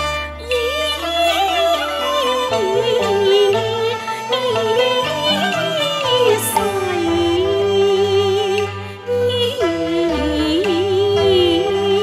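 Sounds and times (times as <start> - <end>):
traditional ensemble accompaniment: 0.0 - 12.0
opera singing with vibrato: 1.0 - 12.0.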